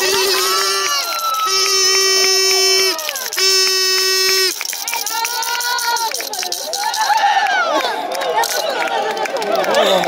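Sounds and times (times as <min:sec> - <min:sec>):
people shouting: 0:00.0 - 0:03.4, 0:05.0 - 0:07.8
horn blast: 0:00.0 - 0:04.6
hand claps: 0:00.0 - 0:10.0.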